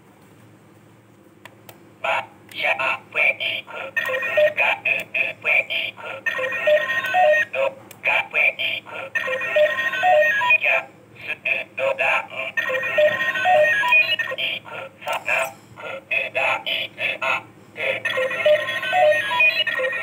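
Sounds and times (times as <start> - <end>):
toy electronic beeps and tones: 4.0 - 4.6, 6.3 - 7.5, 12.6 - 14.3.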